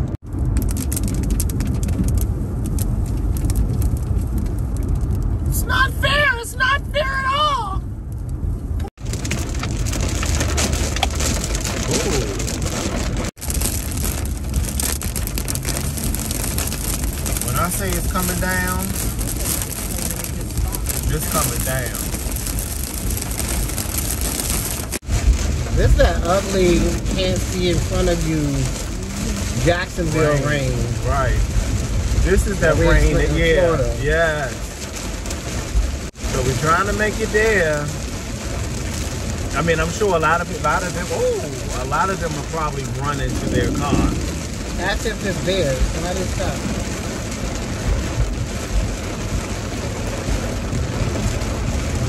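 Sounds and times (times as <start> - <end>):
road and engine rumble: 0.0 - 52.0.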